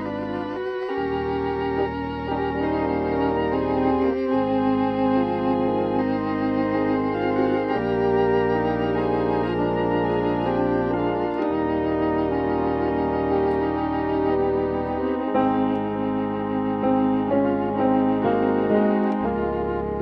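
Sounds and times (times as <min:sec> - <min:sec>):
organ playing a hymn: 0:00.0 - 0:20.0.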